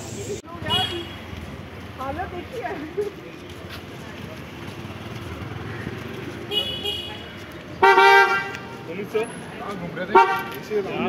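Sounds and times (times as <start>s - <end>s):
street traffic: 0.0s - 11.0s
motorbike passing: 0.1s - 10.0s
steady vehicle horn honk: 6.5s - 8.7s, 10.1s - 10.6s.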